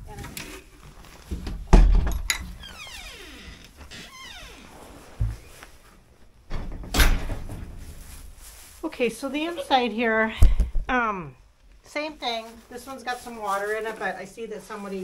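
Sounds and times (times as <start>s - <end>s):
door creaking: 1.3s - 5.6s
wooden door knocks and thuds: 1.4s - 2.3s, 6.5s - 7.7s.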